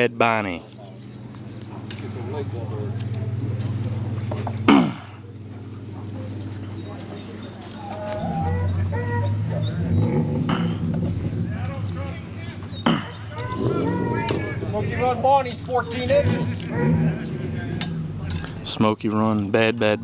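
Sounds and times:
faint voices: 0.0s - 20.0s
low hum: 0.5s - 20.0s
dog barking: 8.2s - 9.8s, 16.6s - 17.3s.

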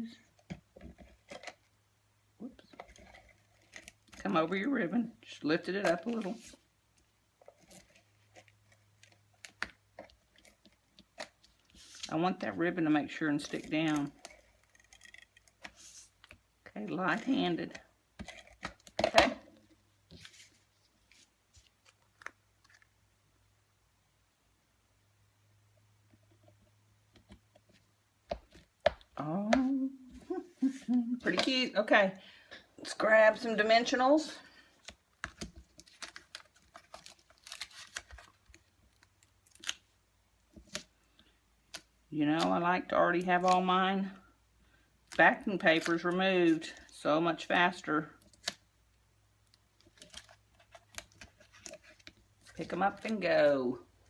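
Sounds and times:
paper rustling: 10.3s - 12.1s, 20.1s - 22.9s.

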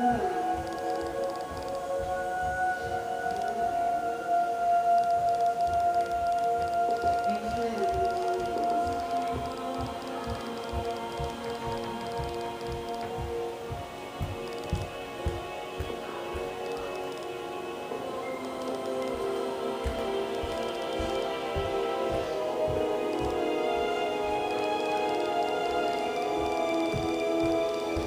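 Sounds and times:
film score through television speaker: 0.0s - 28.0s
low repeated pulse: 0.0s - 28.0s.

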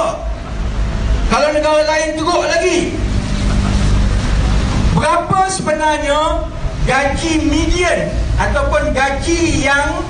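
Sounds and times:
rumbling hiss: 0.0s - 10.0s.

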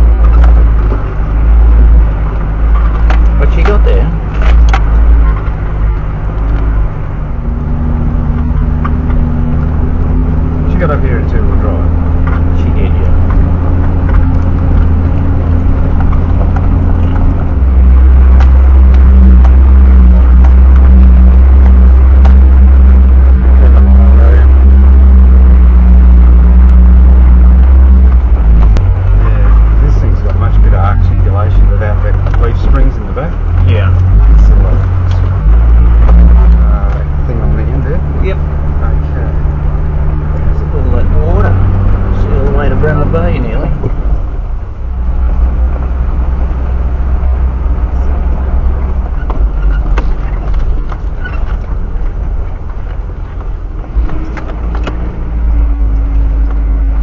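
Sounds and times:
vehicle engine droning under load: 0.0s - 57.0s.

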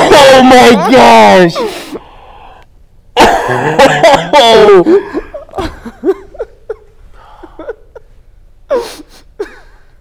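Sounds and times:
man laughing with breathy gasp: 3.2s - 9.9s.

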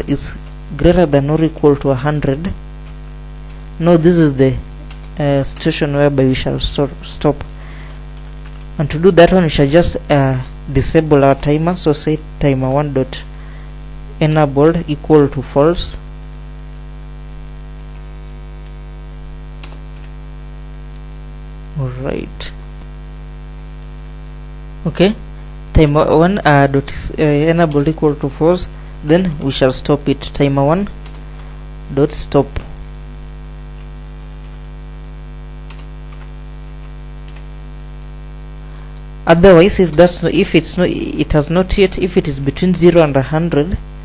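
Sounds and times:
electrical mains hum: 0.0s - 44.0s
faint clicks: 2.8s - 3.7s, 4.8s - 5.7s, 7.4s - 8.7s, 19.5s - 20.2s, 30.9s - 31.5s, 35.6s - 38.1s
computer keys typing: 4.8s - 5.8s, 19.6s - 20.1s, 30.8s - 31.2s, 35.7s - 36.3s.

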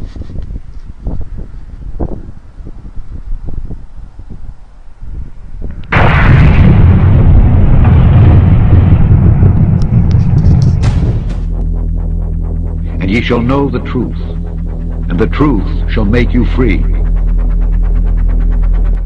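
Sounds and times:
wind buffeting microphone: 0.0s - 12.9s
deep explosion-like rumble: 5.5s - 19.0s.

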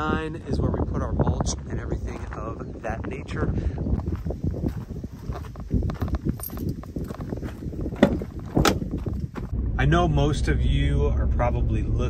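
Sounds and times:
footsteps on gravel: 1.4s - 9.6s.

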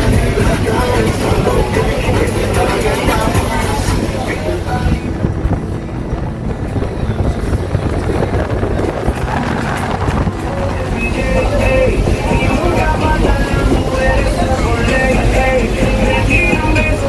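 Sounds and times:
boat engine hum: 0.0s - 17.0s
water rushing past hull: 0.0s - 17.0s
wind buffeting microphone: 0.0s - 17.0s.

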